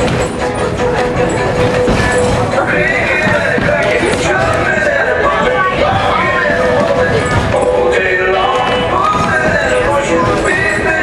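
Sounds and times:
train wheels clattering on rail: 0:00.0 - 0:11.0.

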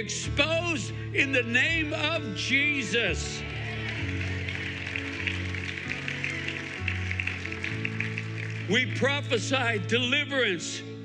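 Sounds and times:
keyboard sustained chords: 0:00.0 - 0:11.0.

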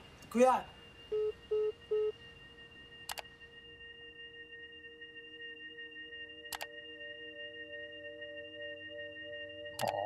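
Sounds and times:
sharp click: 0:09.8 - 0:10.0.

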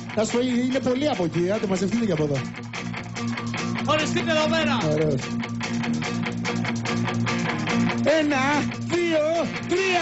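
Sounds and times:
guitar strumming: 0:00.0 - 0:10.0
rock band playing: 0:00.0 - 0:10.0.

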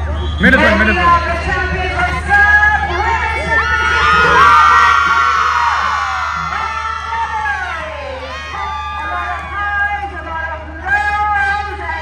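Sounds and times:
young women cheering and shouting: 0:01.0 - 0:12.0.

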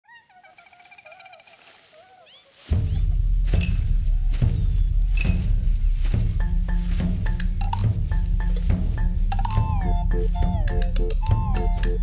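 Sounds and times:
small animal chirps and trills: 0:00.0 - 0:03.1.

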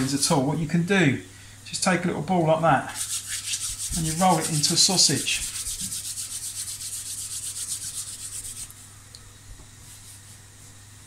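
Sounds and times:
hands rolling dough on worktop: 0:02.9 - 0:08.7.

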